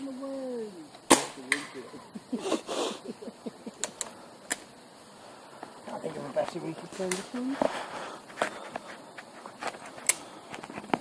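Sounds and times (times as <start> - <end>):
rustle: 0.0 - 11.0.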